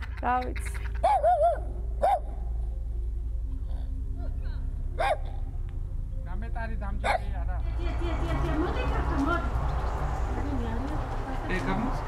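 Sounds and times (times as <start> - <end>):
poultry calling: 0.0 - 2.3
low steady hum: 0.0 - 12.0.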